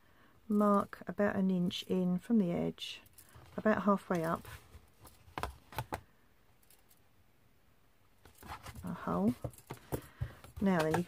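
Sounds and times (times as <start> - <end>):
card rustling: 8.2 - 11.0.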